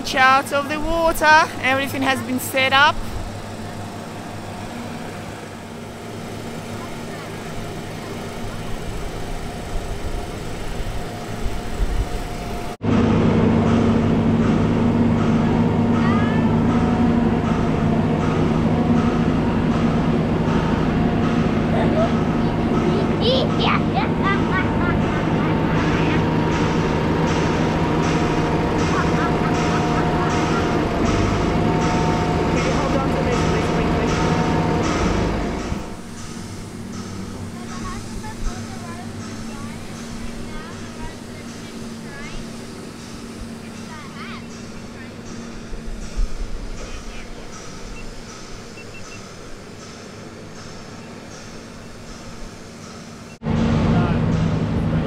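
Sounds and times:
hydraulic machine drone and whine: 0.0s - 55.0s.

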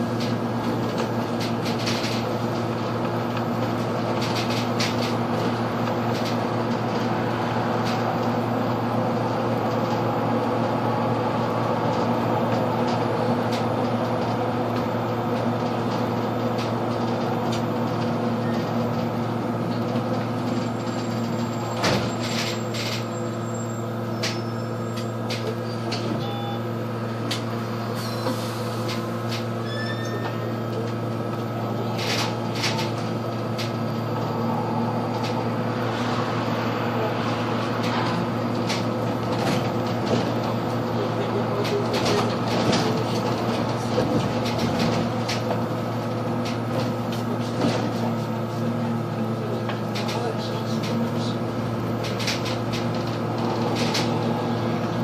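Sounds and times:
bus drivetrain hum: 0.0s - 55.0s
road noise: 0.0s - 55.0s.

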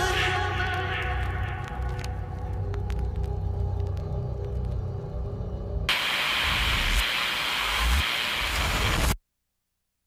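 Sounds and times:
rain-like static noise: 0.5s - 5.2s, 5.9s - 9.2s.

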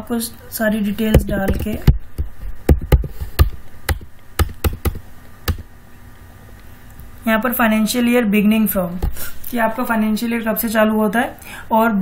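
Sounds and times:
keyboard keys struck: 1.0s - 5.7s.

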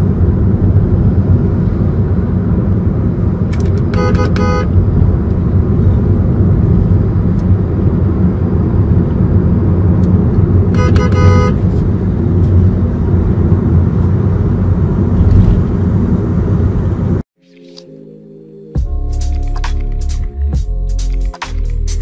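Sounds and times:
vehicle engine and road noise: 0.0s - 22.0s
vehicle horn toots: 3.8s - 4.8s, 10.7s - 11.8s.

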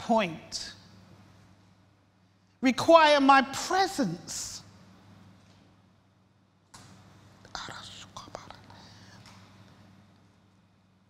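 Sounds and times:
low steady hum: 0.0s - 11.0s
microphone hiss: 0.0s - 11.0s
woman breathing and whispering: 7.5s - 9.4s.

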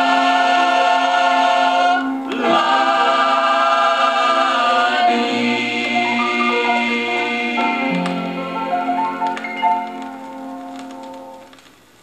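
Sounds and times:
gospel group singing in harmony: 0.0s - 8.6s.

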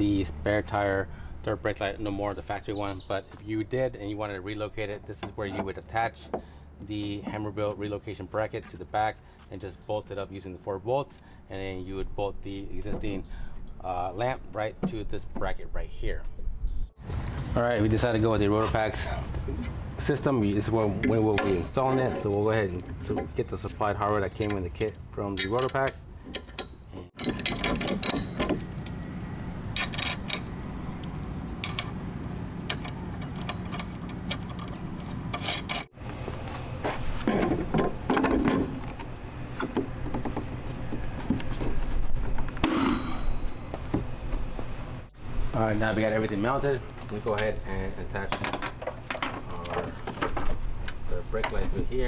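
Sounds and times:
steady low hum: 0.0s - 52.0s
small metal hardware clinking: 24.3s - 28.6s, 29.7s - 30.5s, 31.6s - 32.0s, 32.6s - 35.9s.

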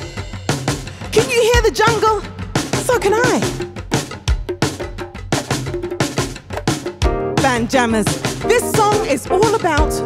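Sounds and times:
band music: 0.0s - 3.8s, 7.0s - 10.0s
drum groove of sharp hits: 0.0s - 10.0s.

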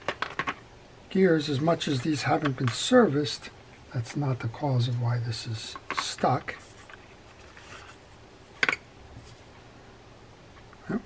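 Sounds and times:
hands rustling metal parts: 5.8s - 9.5s.

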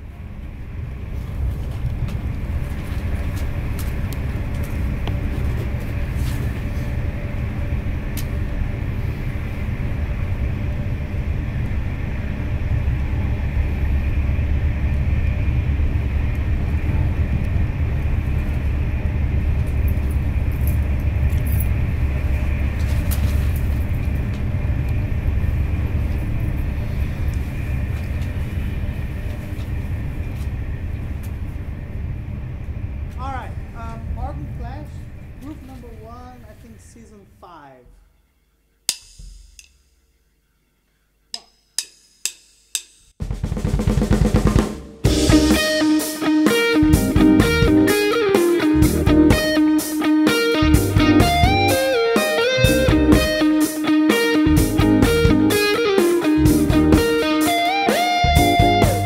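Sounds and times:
vehicle rumble from inside cabin: 0.0s - 36.8s.

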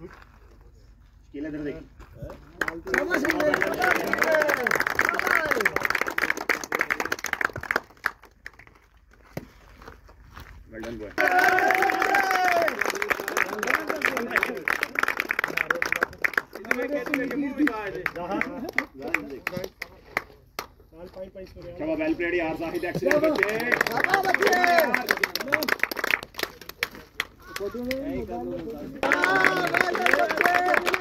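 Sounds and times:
people clapping: 2.2s - 9.2s, 10.8s - 21.2s, 22.7s - 31.0s
men calling out: 11.2s - 12.8s, 28.9s - 31.0s.

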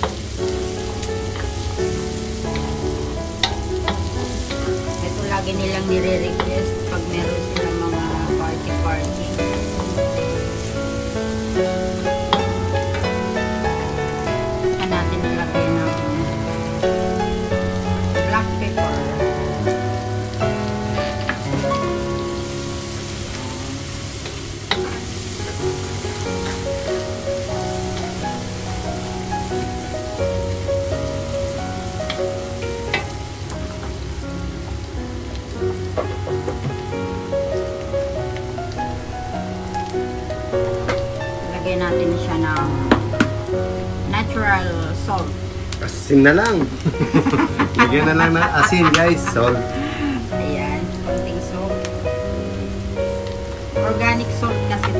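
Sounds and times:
background music: 0.0s - 54.9s
garlic and onion sizzling: 0.0s - 54.9s.

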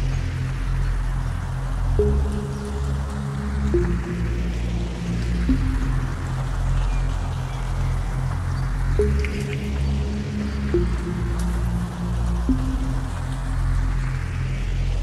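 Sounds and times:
sustained synth chords: 0.0s - 15.0s
synth bass: 0.0s - 15.0s.

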